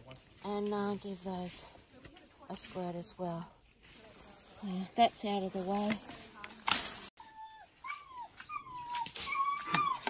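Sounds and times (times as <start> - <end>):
animal whining calls: 7.2 - 10.0.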